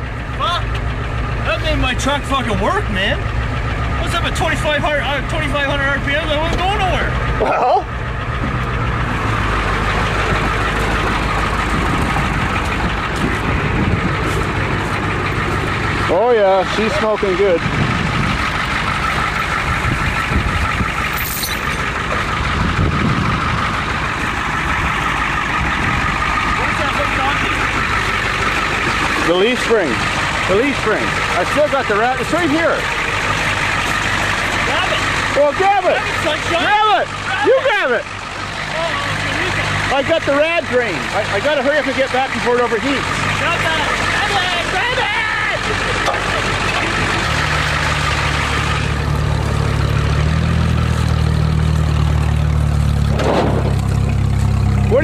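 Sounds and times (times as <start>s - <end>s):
truck engine running: 0.0s - 55.0s.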